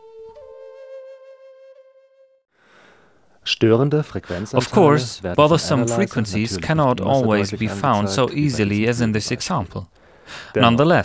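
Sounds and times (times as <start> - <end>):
solo flute playing: 0.0 - 2.4.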